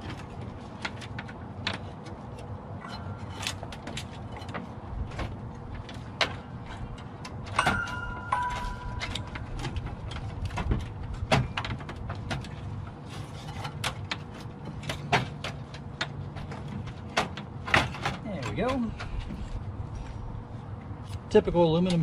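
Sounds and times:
metal parts clicking and rattling: 0.0s - 19.3s.

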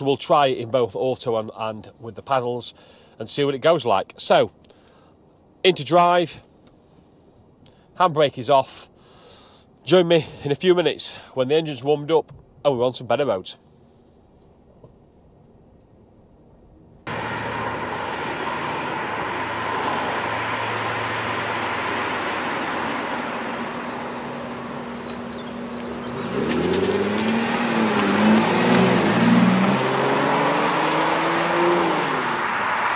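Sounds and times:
car engine revving: 17.1s - 32.9s.

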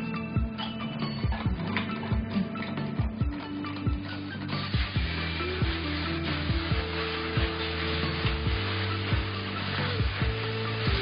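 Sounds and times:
background music with beat: 0.0s - 11.0s
hands rubbing shampoo lather: 3.4s - 11.0s.

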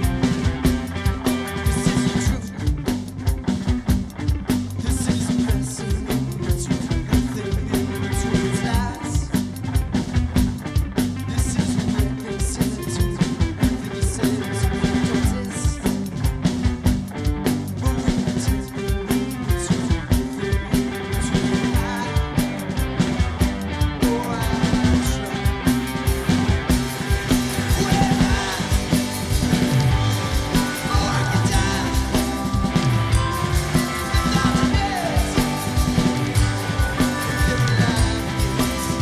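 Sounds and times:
bass guitar: 0.0s - 39.0s
drum kit beat: 0.0s - 39.0s
electric guitars: 0.0s - 39.0s
keyboard: 0.0s - 39.0s.

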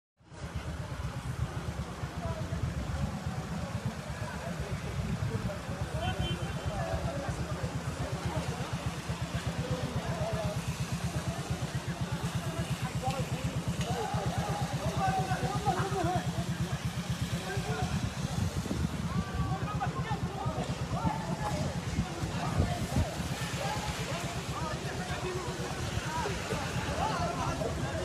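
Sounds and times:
faint voices: 0.3s - 28.0s
motor running with low throb: 0.7s - 28.0s.

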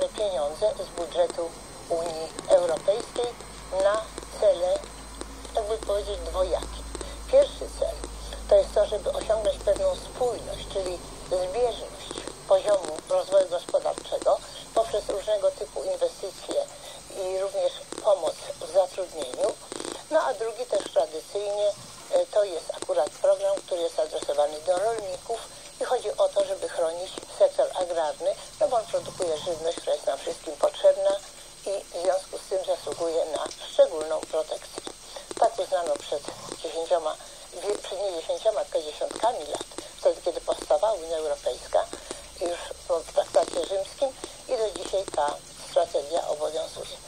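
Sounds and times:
faint steady hiss: 0.0s - 47.0s
woman talking on radio: 0.0s - 47.0s.

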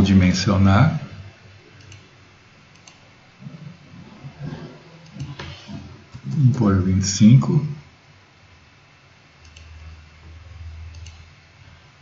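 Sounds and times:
low hum: 0.0s - 12.0s
computer mouse clicks: 1.8s - 2.1s, 2.7s - 3.0s, 5.0s - 6.5s, 9.4s - 9.8s, 10.9s - 11.3s.

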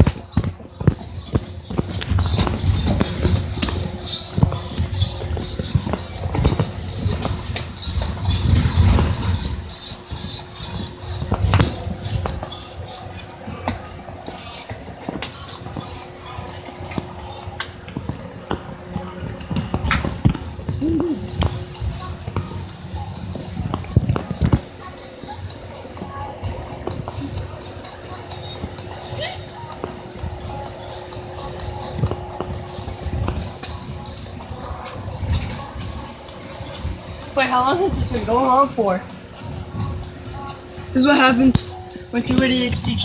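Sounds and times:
phone microphone rubbing on clothing: 0.0s - 21.3s
steady low hum: 0.0s - 43.0s.

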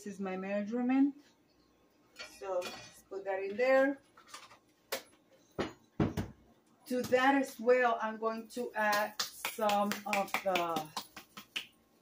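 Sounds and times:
kitchen items knocking on countertop: 5.6s - 6.4s.

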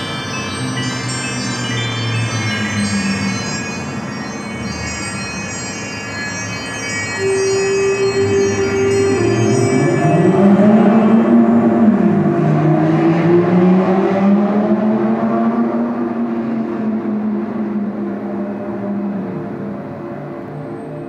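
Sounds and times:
car engine accelerating: 8.5s - 19.6s.

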